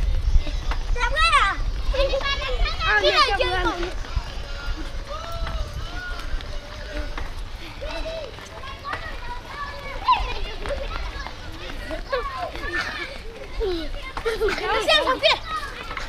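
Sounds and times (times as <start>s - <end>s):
wind rumble on microphone: 0.0s - 7.6s
running footsteps: 0.0s - 16.0s
children shouting: 0.6s - 16.0s.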